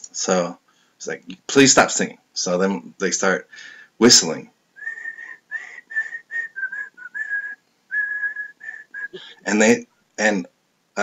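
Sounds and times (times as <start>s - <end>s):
man whistling a tune: 4.8s - 9.3s.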